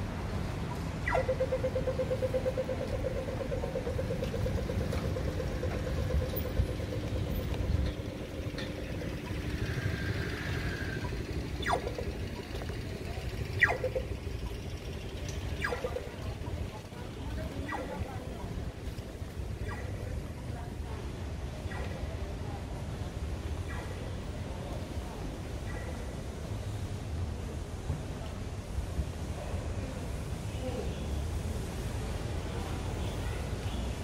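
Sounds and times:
road traffic rumbling: 0.0 - 34.0
crossing signal beeping rapidly: 1.1 - 16.2.

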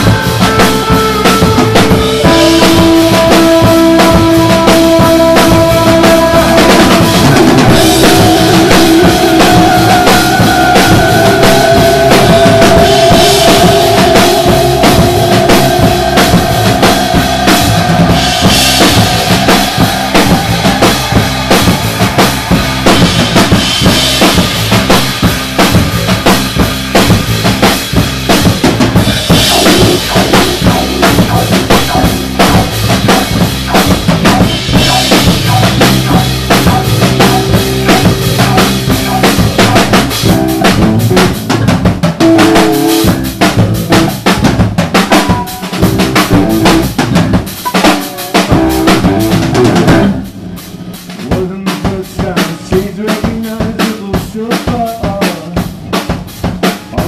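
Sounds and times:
electric bass: 0.0 - 53.3
electric guitar: 0.0 - 54.2
drum kit: 0.0 - 57.0.

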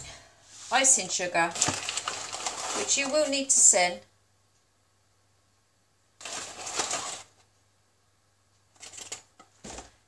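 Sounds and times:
paper and cardboard rustling: 0.6 - 3.4, 6.2 - 7.5, 8.8 - 10.0.

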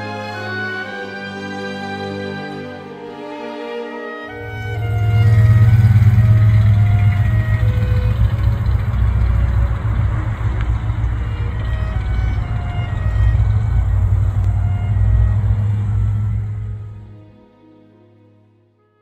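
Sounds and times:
car engine deep exhaust note: 4.4 - 17.1.

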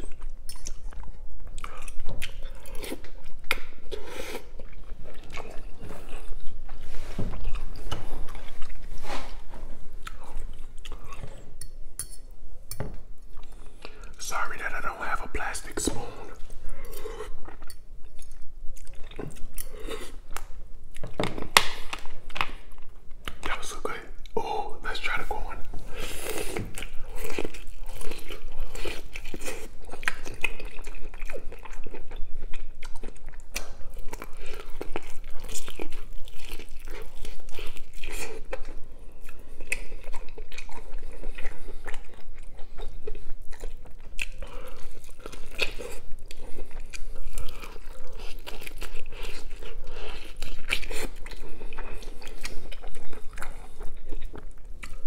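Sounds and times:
person chewing noodles: 0.0 - 55.0.

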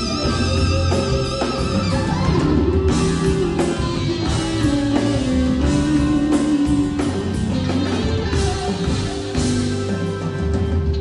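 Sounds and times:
drum kit beat: 0.0 - 11.0
electric guitar lead line: 0.0 - 11.0
live rock band playing: 0.0 - 11.0.

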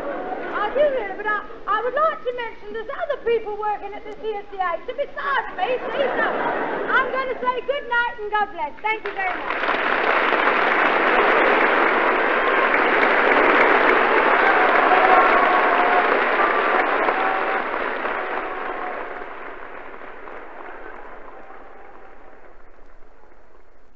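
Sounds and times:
audience applauding: 0.0 - 2.4, 3.9 - 23.9.

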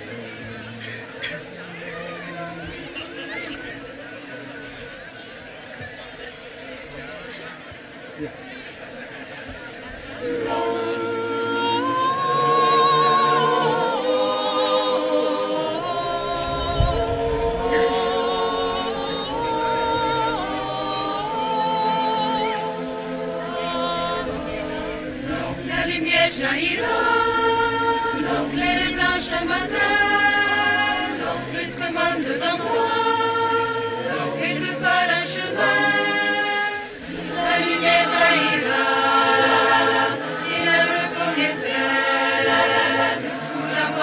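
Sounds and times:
choir singing unaccompanied: 9.2 - 44.0.

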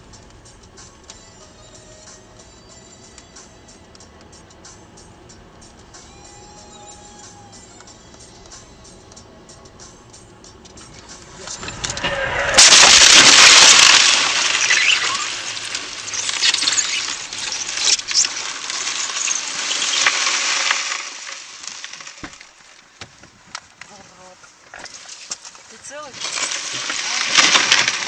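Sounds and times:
loud car crash: 10.9 - 23.0, 26.2 - 28.0
crunching and breaking noise: 11.0 - 23.0, 24.7 - 28.0.

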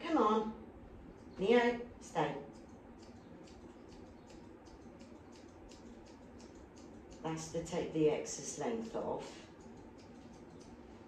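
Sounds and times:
shears snipping hair: 1.2 - 11.0.

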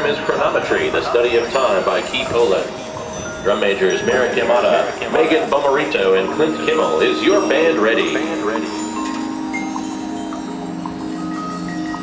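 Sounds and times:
sustained low chord: 1.2 - 12.0.

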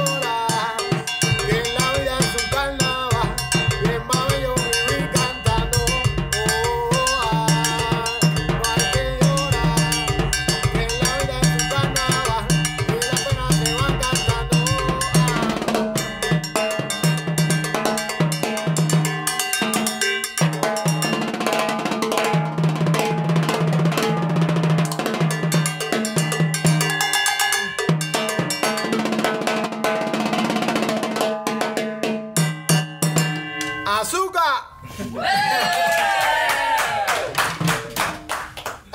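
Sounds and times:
repeating bass line: 0.0 - 16.1
cowbell: 0.0 - 34.3
drums playing latin rhythm: 0.0 - 34.4, 35.0 - 38.9.

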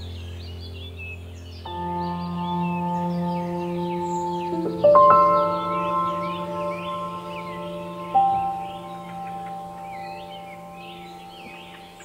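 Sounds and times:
ambient bell-like music: 0.0 - 12.0
birds chirping: 0.0 - 12.0.

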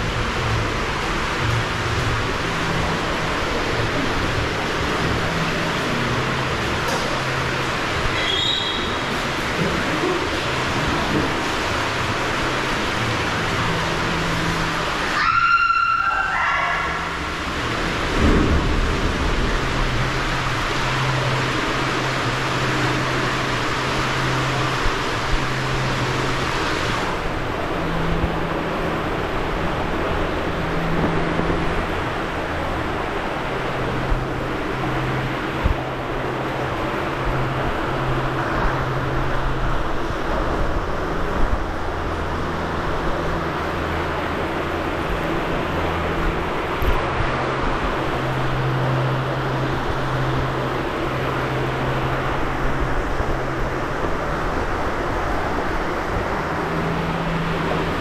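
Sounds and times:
water rushing down a slide: 0.0 - 44.1
low hum: 0.0 - 58.0.

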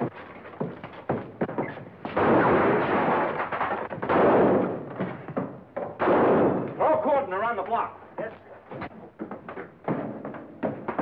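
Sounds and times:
echoing gunshot: 2.2 - 5.3, 6.0 - 6.9.

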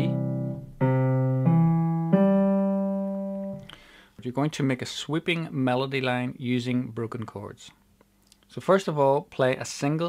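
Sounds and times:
piano playing broken chord: 0.0 - 3.6.

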